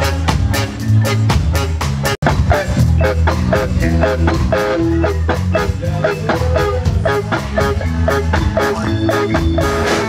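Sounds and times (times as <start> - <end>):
drum kit: 0.0 - 10.0
low bass line: 0.0 - 10.0
strummed electric guitar: 0.0 - 10.0.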